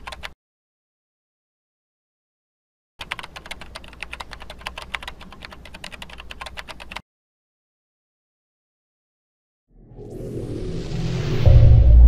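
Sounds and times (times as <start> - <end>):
keyboard typing: 0.0 - 0.4, 3.0 - 7.0.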